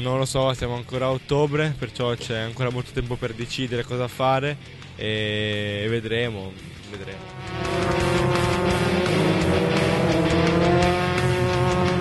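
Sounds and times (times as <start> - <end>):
rock music with steady beat: 1.3 - 12.0
racing car engine accelerating: 6.9 - 12.0.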